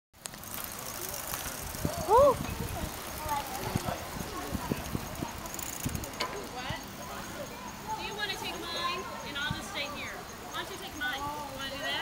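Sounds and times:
cyclists chattering: 0.2 - 12.0.

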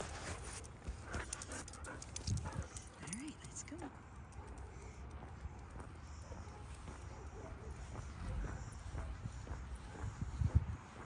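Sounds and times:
footsteps on concrete: 4.4 - 11.0.

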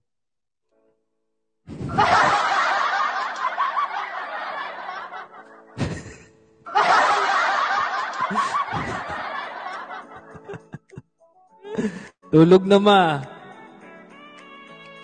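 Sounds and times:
man laughing into microphone: 1.9 - 11.0.

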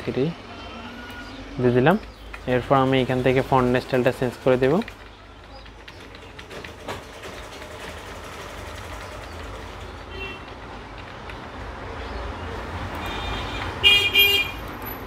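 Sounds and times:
traffic rumble: 0.0 - 15.0
vehicle horn: 10.1 - 10.5, 13.0 - 14.6.

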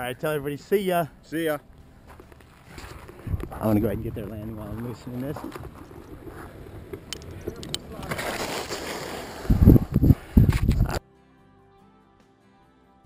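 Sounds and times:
wind buffeting microphone: 2.9 - 8.3, 9.1 - 11.0.

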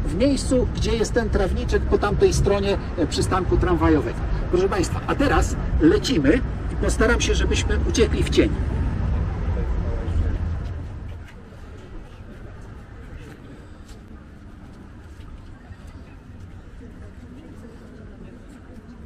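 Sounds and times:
city street traffic: 0.0 - 19.0
faint voices: 0.0 - 19.0.

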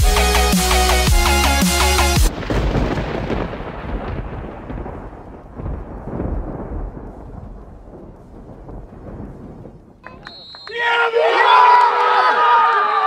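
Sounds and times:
thunder-like rumbling: 2.3 - 10.0.

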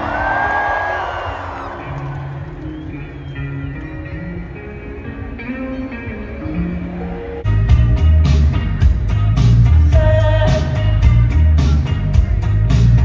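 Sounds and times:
electric guitars: 0.0 - 13.0
live band playing: 2.0 - 13.0
bass notes: 6.1 - 13.0.

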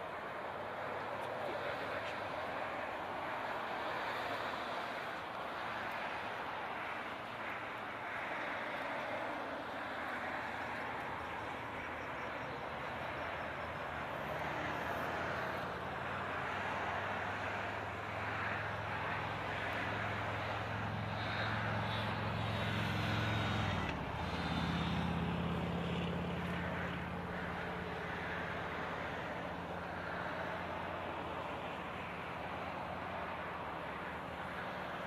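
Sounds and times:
vehicle engine drone: 0.0 - 35.0.

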